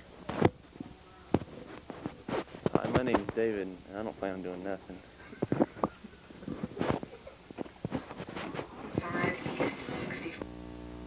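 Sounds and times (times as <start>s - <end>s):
shuffling and rustling: 0.0s - 3.7s, 4.4s - 10.4s.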